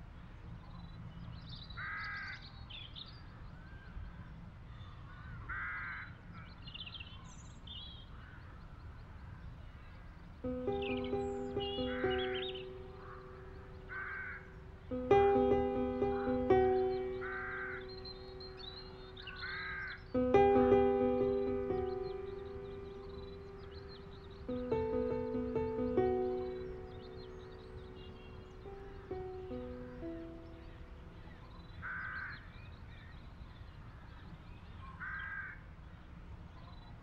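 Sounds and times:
crow cawing: 5.5s - 6.1s, 10.8s - 20.0s
small birds chirping: 9.8s - 33.7s
soft piano music: 10.4s - 32.2s.

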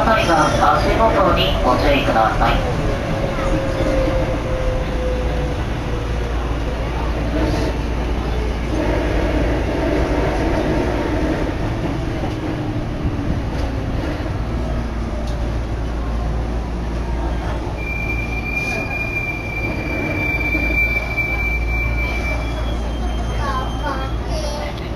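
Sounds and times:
train rumbling: 0.0s - 24.9s
high-pitched wheel squeal: 17.8s - 24.3s.

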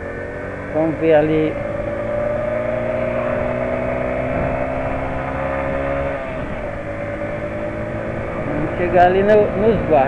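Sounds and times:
small motorcycle engine running: 0.0s - 10.0s.

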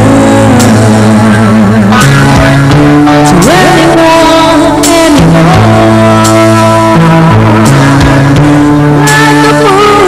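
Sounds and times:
woman singing: 0.0s - 2.4s, 3.2s - 8.4s, 9.0s - 10.0s
keyboard chords: 0.0s - 10.0s.

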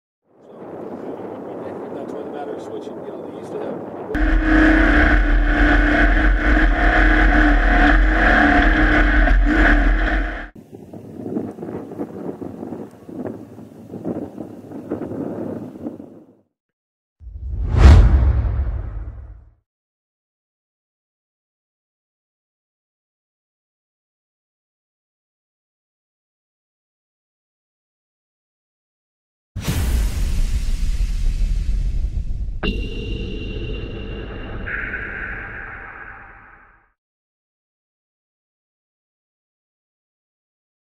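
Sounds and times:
deep cinematic boom rumble: 4.2s - 10.6s, 17.3s - 19.5s, 29.6s - 36.6s
truck engine running loud: 4.2s - 10.6s.

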